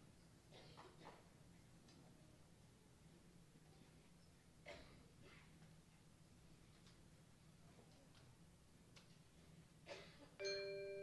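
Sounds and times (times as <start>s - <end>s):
ringing bell-like mallet note: 10.4s - 11.0s.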